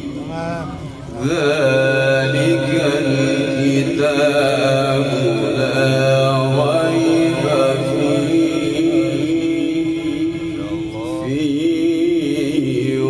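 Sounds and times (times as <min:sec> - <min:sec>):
man chanting melodic recitation: 0:00.0 - 0:13.0.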